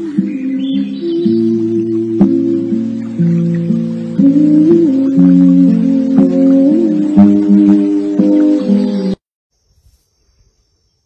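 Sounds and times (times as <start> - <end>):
background music: 0.0 - 9.2.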